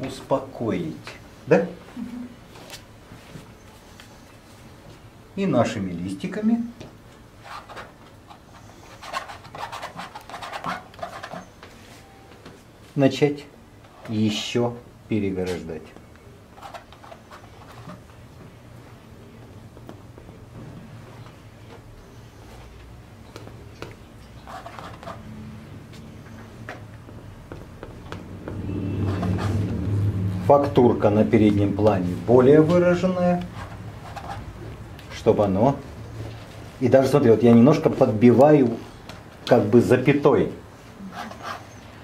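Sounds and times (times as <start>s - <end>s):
low steady hum: 0.0s - 42.0s
brush scraping paint on canvas: 24.4s - 25.3s, 28.5s - 29.9s, 41.0s - 41.9s.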